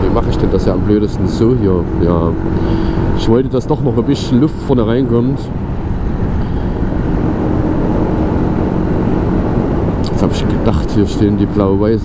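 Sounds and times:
motorcycle engine cruising: 0.0s - 12.0s
wind rushing over microphone: 0.0s - 12.0s.

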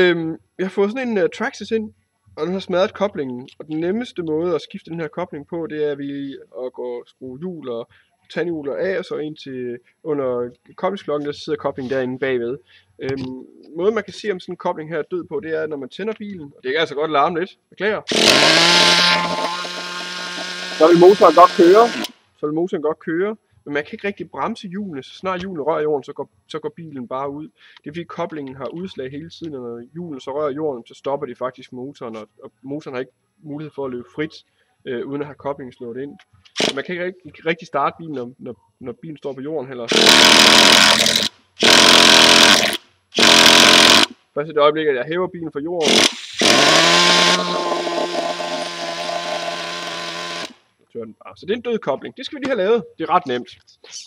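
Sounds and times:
nitro engine starting burst: 18.1s - 22.1s, 36.6s - 36.8s, 39.9s - 44.1s, 45.8s - 50.5s.

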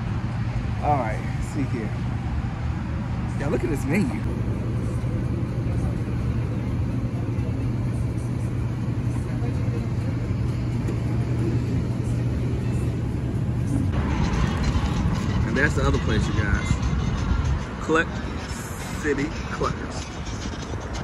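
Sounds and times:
low background rumble: 0.0s - 21.0s
low engine hum: 0.0s - 21.0s.

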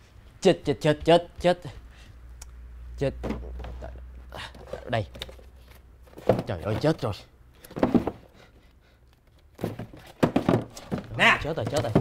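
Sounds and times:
ring binders rustling and scraping: 9.4s - 12.0s.

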